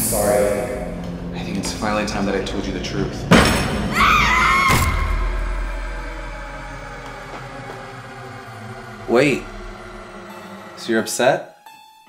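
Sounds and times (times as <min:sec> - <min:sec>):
dramatic music sting: 0:00.0 - 0:12.0.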